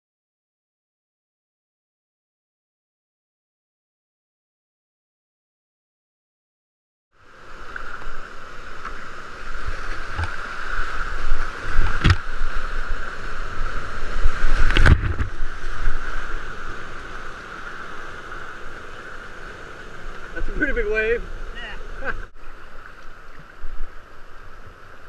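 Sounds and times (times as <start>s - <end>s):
whitewater rapids rushing: 7.2s - 25.0s.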